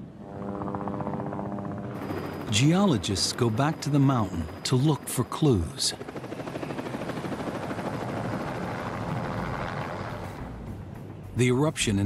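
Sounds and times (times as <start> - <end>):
helicopter rotor beating: 0.0 - 12.0.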